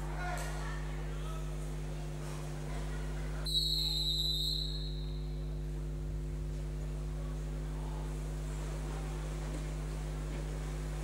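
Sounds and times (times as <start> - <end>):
steady low hum: 0.0 - 11.0
referee's whistle blast: 3.5 - 5.2.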